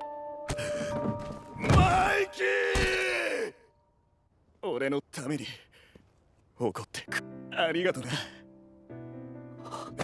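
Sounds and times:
man shouting: 1.7s - 3.6s
background music with held tones: 7.1s - 10.0s.

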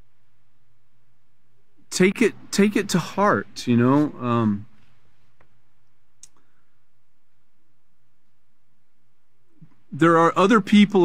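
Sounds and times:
low room hiss: 0.0s - 11.0s
faint short clicks: 6.2s - 6.5s.

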